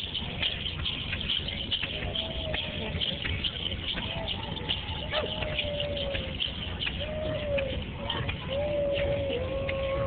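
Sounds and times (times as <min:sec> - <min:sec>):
crowd noise: 0:00.0 - 0:10.0
faint scattered clicks: 0:00.0 - 0:10.0.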